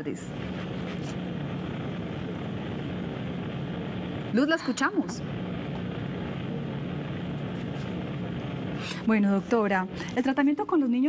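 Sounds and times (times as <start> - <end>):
telephone line hiss with low hum: 0.0 - 11.0.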